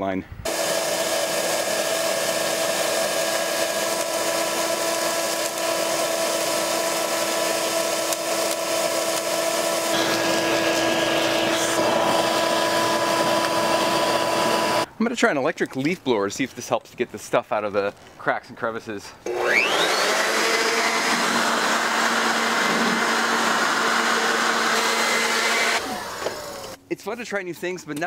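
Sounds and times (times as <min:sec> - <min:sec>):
shop vacuum whining: 0:00.5 - 0:14.9, 0:19.2 - 0:26.8.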